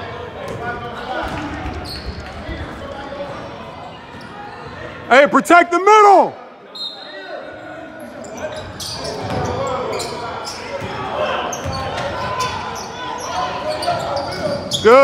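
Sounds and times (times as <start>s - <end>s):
echoing chatter in hall: 0.0s - 15.0s
man shouting: 5.1s - 6.4s.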